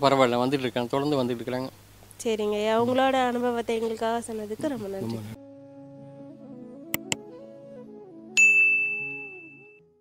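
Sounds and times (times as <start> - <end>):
soft background music: 2.8 - 10.0
bright bell-like ding: 8.4 - 9.8.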